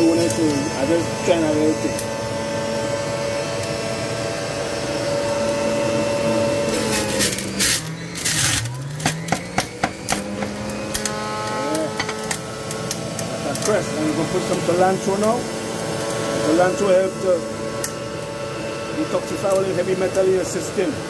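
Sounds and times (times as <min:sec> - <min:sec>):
juicer motor whine: 0:00.0 - 0:21.0.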